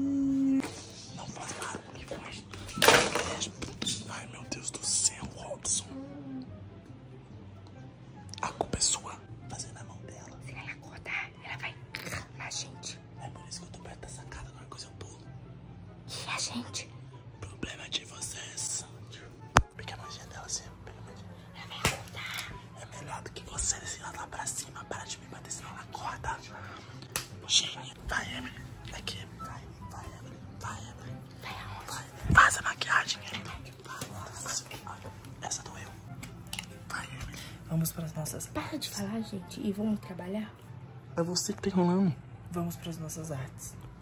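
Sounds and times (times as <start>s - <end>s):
woman whispering: 0.0s - 2.6s, 3.5s - 6.6s, 8.4s - 15.3s, 16.1s - 36.0s, 36.8s - 38.0s.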